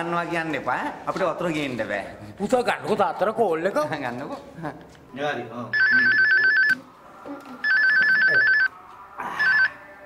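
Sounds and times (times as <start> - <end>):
telephone ringing: 5.8 - 6.8, 7.6 - 8.7, 9.4 - 9.8.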